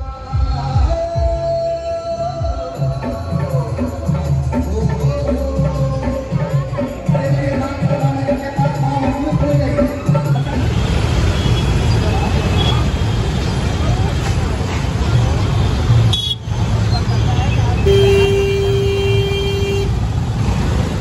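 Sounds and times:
street traffic: 0.0s - 21.0s
motorbike engine and road rumble: 10.5s - 21.0s
vehicle horn: 16.1s - 16.5s, 17.8s - 20.0s.

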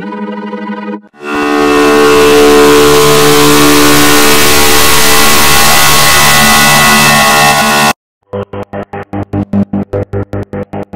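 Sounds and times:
distorted electronic tones: 1.2s - 10.9s.

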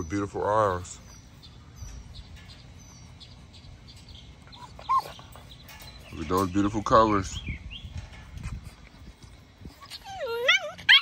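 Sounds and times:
faint bird chirping: 0.0s - 10.4s
puppy yelping: 4.5s - 5.4s, 9.8s - 11.0s.

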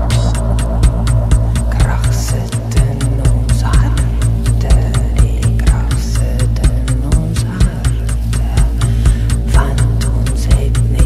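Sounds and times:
deep droning bass: 0.0s - 11.0s
sharp percussion ticks: 0.0s - 11.0s.

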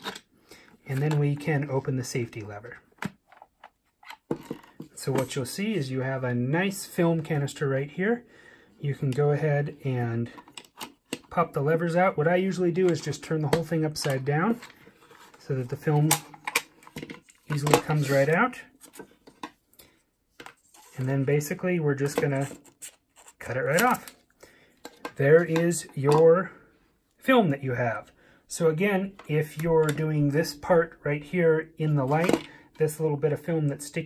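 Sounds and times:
faint clicks and taps of film handling: 10.4s - 11.3s, 16.1s - 17.9s, 18.8s - 20.6s, 24.8s - 26.2s.

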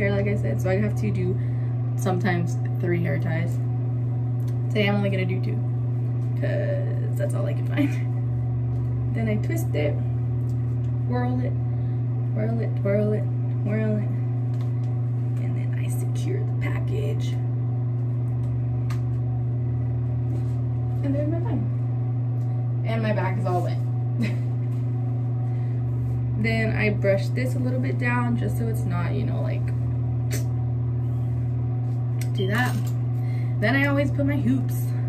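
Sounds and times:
steady low hum: 0.0s - 35.0s
faint hair rustling: 20.2s - 21.5s.

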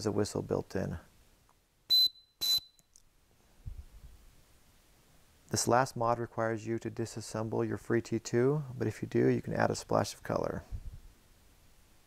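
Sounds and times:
shrill plastic whistle blasts: 1.9s - 2.9s.

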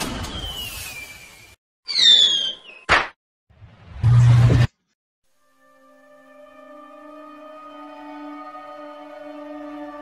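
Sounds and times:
falling whistling tone: 0.2s - 2.9s.

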